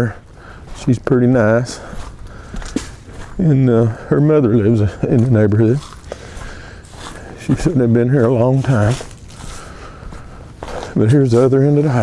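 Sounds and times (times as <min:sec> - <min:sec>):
footsteps on dry leaves: 0:00.2 - 0:12.0.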